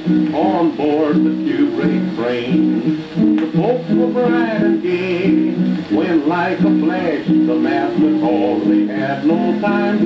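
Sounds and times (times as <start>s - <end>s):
country ballad from a record: 0.0s - 10.0s
person singing: 0.0s - 10.0s.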